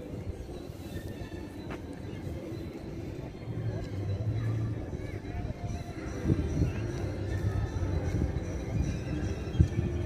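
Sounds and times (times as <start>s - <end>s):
low rumble of city ambience: 0.0s - 10.0s.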